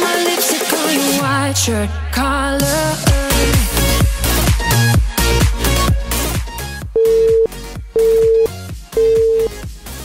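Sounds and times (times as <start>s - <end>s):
electronic countdown beeps: 7.0s - 9.5s.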